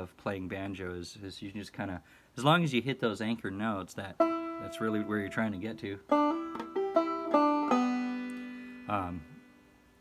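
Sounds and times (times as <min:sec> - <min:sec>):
banjo plucked melody: 0:04.1 - 0:09.7.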